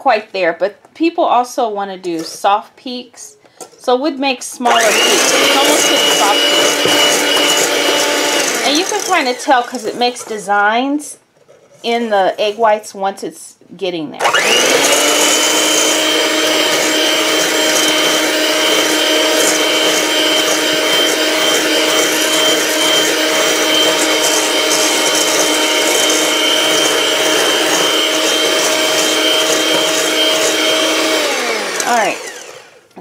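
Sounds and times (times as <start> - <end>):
electric hand mixer whine: 4.6 - 10.0, 14.2 - 32.9
motor spinning down: 4.7 - 9.4, 14.2 - 32.8.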